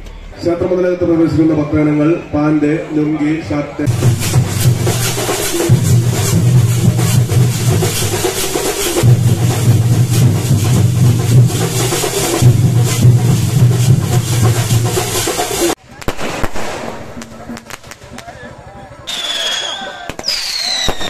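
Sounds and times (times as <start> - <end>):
crowd voices: 0.0 - 21.0
festival drumming: 3.8 - 21.0
fireworks crackling: 3.8 - 21.0
clashing cymbals: 3.9 - 15.8.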